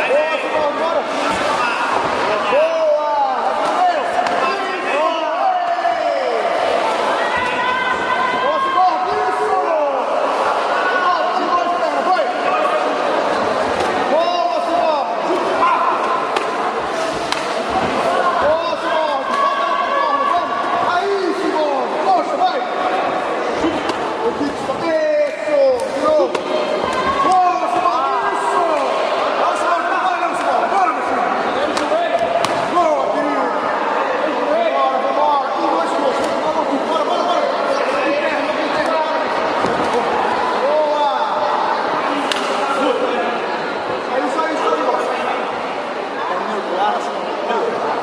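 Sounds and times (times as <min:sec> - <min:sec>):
people shouting: 0:00.0 - 0:12.9, 0:13.6 - 0:34.9.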